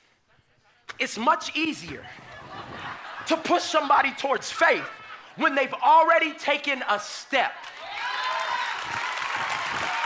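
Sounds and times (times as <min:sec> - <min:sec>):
congregation applauding and cheering: 0:07.3 - 0:10.0.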